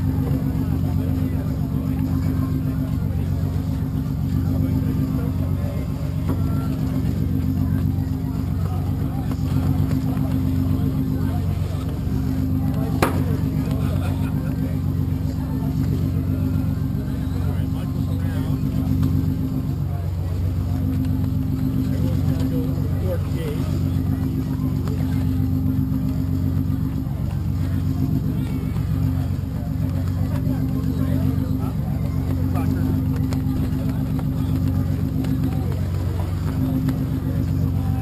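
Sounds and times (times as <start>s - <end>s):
engine humming: 0.0s - 38.0s.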